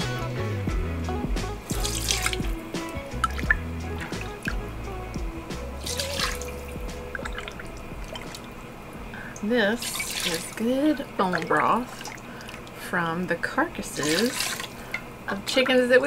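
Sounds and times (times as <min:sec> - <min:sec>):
background music with bass line: 0:00.0 - 0:09.1
broth splashing into metal strainer: 0:01.7 - 0:08.6, 0:09.2 - 0:10.7, 0:14.0 - 0:15.1
liquid dripping: 0:01.7 - 0:12.8, 0:13.8 - 0:15.8.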